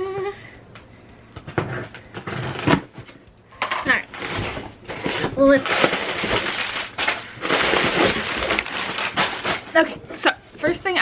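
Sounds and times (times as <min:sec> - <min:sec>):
packing paper rustling: 0:04.0 - 0:09.9.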